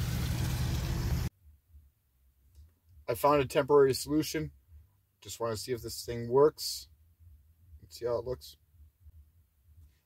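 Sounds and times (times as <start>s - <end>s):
van engine humming: 0.0s - 1.3s.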